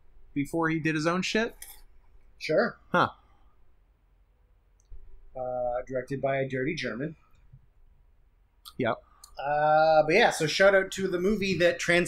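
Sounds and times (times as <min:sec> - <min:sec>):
man speaking: 0:02.4 - 0:03.2, 0:05.3 - 0:07.3, 0:08.7 - 0:12.0.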